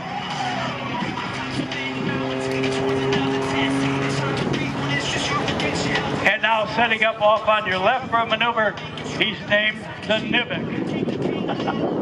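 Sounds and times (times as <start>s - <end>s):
propeller plane engine overhead: 0.0s - 12.0s.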